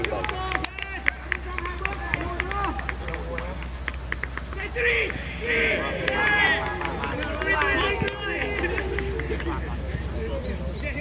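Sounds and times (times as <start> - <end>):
players shouting to one another: 4.6 - 8.7.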